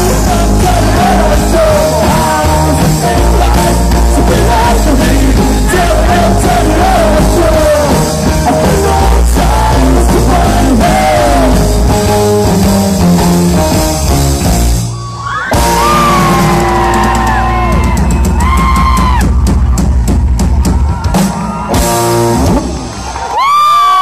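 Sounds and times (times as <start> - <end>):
live rock band playing: 0.0 - 23.5
crowd cheering and whooping: 14.7 - 24.0.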